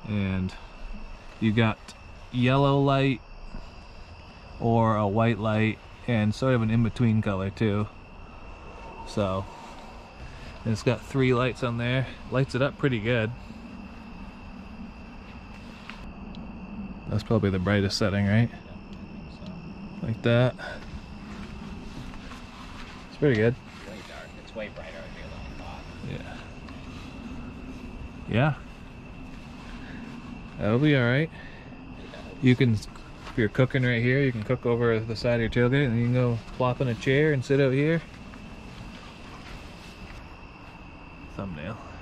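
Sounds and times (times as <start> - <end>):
crickets trilling: 0.0 - 42.0
low rumble: 5.3 - 41.2.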